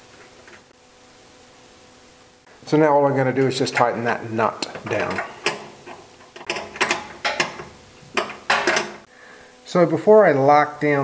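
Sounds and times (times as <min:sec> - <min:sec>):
ratcheting wrench clicking: 0:04.9 - 0:09.0.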